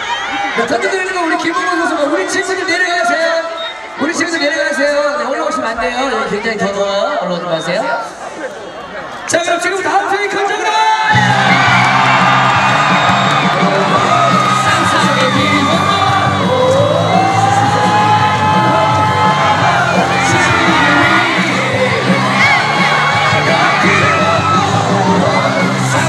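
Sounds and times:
crowd shouting and cheering: 0.0s - 26.0s
music over stadium speakers: 11.0s - 26.0s.

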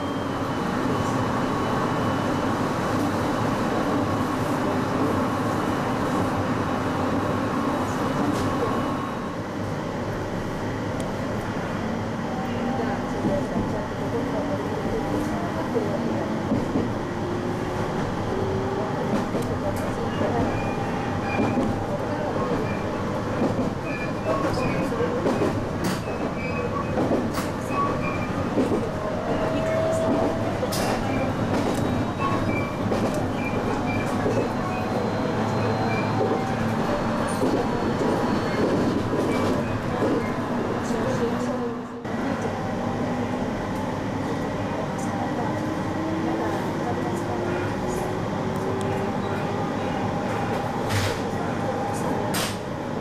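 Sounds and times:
train wheels rumbling on track: 0.0s - 53.0s.

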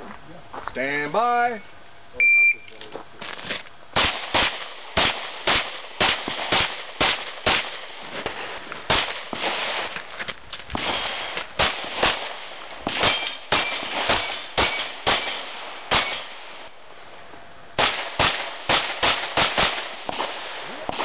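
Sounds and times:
rapid pistol shots: 4.0s - 8.2s, 8.9s - 9.9s, 10.7s - 16.6s, 17.8s - 21.0s
bullets ringing on steel targets: 13.0s - 16.3s.

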